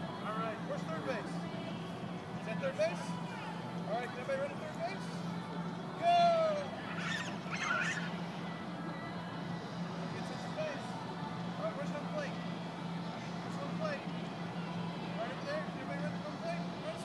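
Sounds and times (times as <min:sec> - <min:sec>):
steady low hum: 0:00.0 - 0:17.0
high-pitched shout: 0:06.1 - 0:08.1
distant children's voices: 0:06.7 - 0:08.4.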